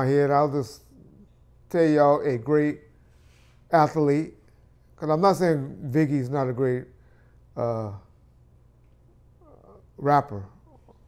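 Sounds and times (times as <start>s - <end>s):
steady low hum: 0.0s - 11.0s
faint wavering voice-like sound: 9.4s - 11.0s.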